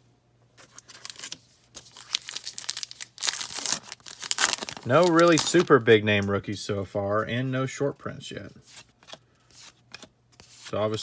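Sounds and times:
card pack wrapper crinkling and tearing: 0.6 - 5.8.

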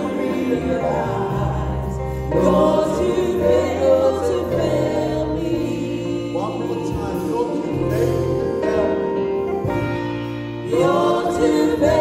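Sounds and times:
instrumental accompaniment with bass: 0.0 - 12.0
man singing: 5.5 - 9.3.

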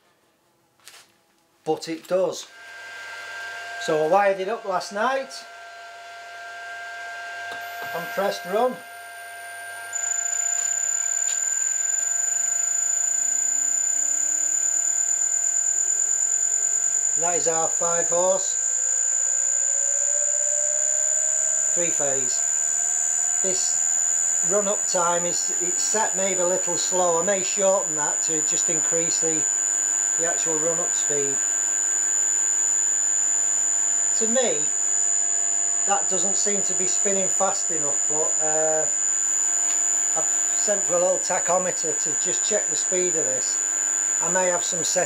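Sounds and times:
high-pitched inverter whine: 0.6 - 45.0
electric motor hum rising in pitch: 2.4 - 45.0.

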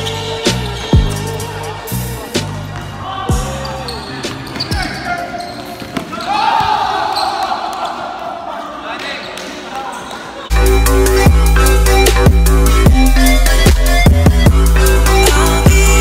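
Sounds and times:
players calling out: 0.0 - 10.8.

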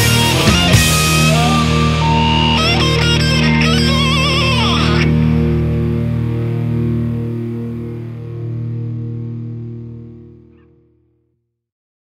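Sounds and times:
distorted lead guitar: 0.0 - 11.1
guitar and bass chord ringing: 0.0 - 11.2.

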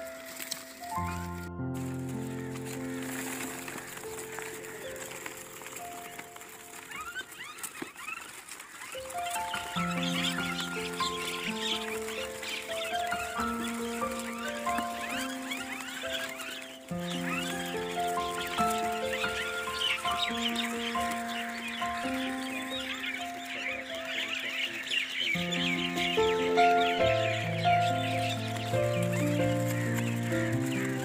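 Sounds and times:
music of slow held chords: 0.0 - 7.3, 9.0 - 31.0
flock of small birds chirping: 0.0 - 31.0.

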